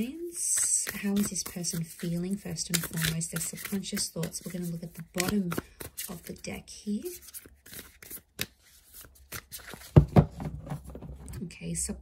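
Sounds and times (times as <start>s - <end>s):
cards being shuffled: 0.5s - 11.0s.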